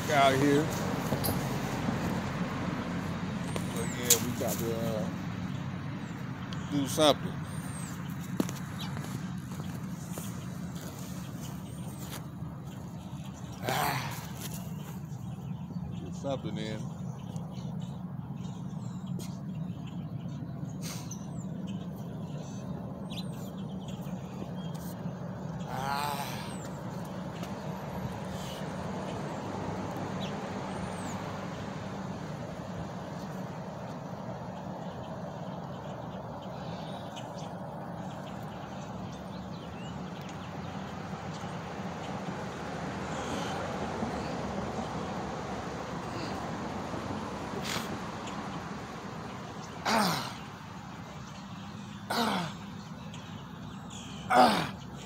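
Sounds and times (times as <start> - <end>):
distant traffic rumble: 0.0 - 55.0.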